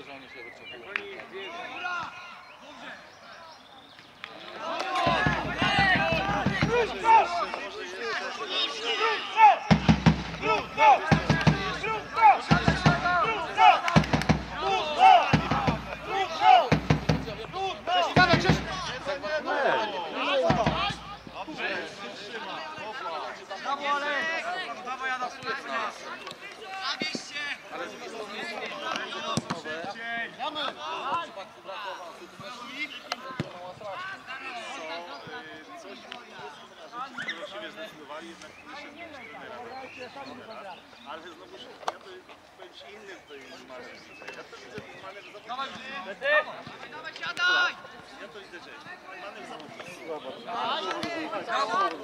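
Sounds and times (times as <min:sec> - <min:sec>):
players calling out: 0:00.5 - 0:41.0.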